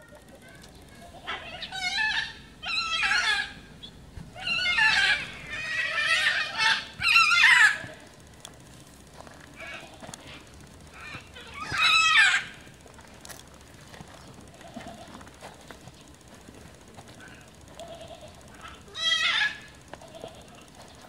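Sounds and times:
high wavering animal calls: 0:00.6 - 0:08.4, 0:09.2 - 0:21.0.

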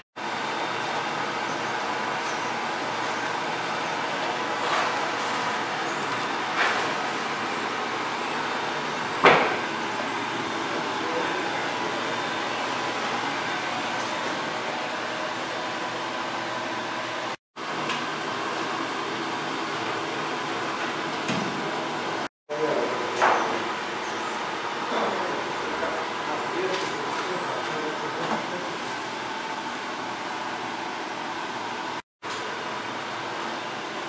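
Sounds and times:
boiler fan and motors humming: 0:00.2 - 0:34.0.

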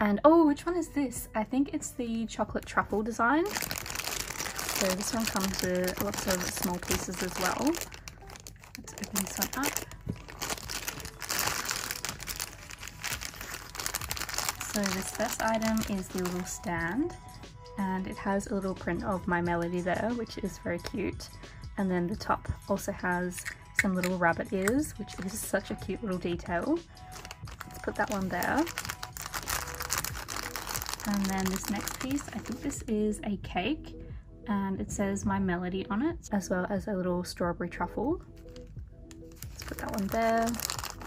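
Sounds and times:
plastic bag crinkling: 0:03.4 - 0:16.6, 0:27.0 - 0:32.7, 0:38.4 - 0:41.0.

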